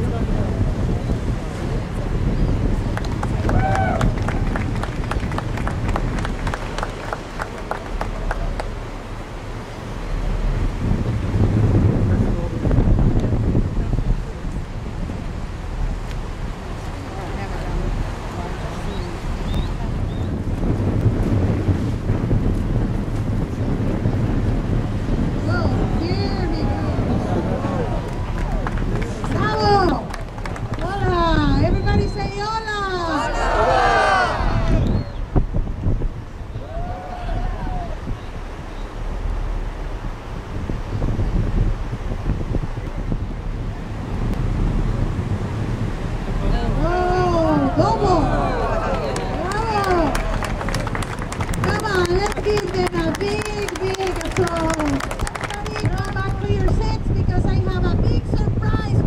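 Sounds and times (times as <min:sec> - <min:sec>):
boat engine rumbling: 0:00.0 - 0:59.0
wind on microphone: 0:00.0 - 0:59.0.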